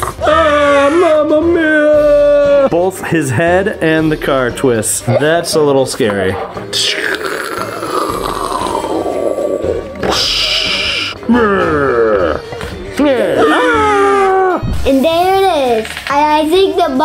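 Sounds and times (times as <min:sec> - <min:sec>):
cartoonish pitched vocal sounds: 0:00.0 - 0:02.7, 0:05.0 - 0:15.3
background music: 0:00.0 - 0:17.0.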